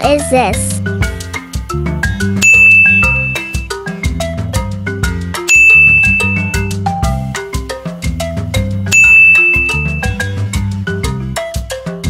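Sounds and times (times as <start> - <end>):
upbeat background music: 0.0 - 12.0
bright ding chime: 2.4 - 3.7, 5.5 - 6.8, 8.9 - 10.3.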